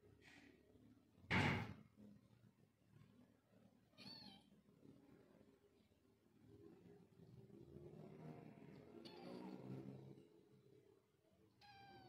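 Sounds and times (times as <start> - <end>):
kitten meowing: 4.0 - 4.5, 11.6 - 12.0.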